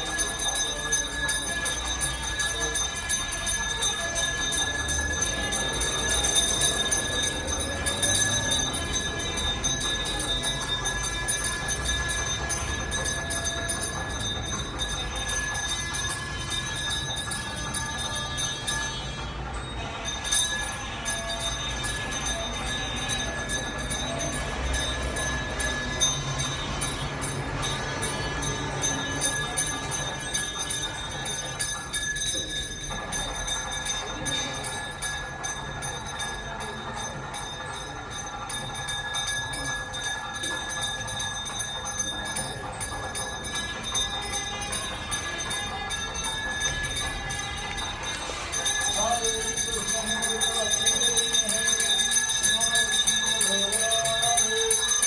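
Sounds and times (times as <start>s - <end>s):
temple bells ringing: 0.0s - 55.0s.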